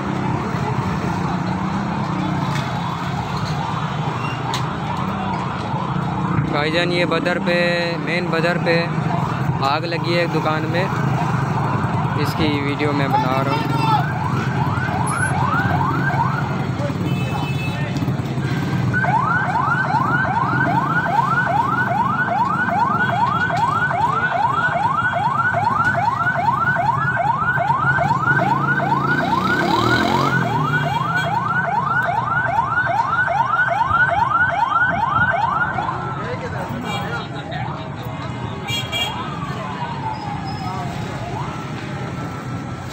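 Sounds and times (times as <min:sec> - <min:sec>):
fire engine siren sweeping: 0:00.0 - 0:42.9.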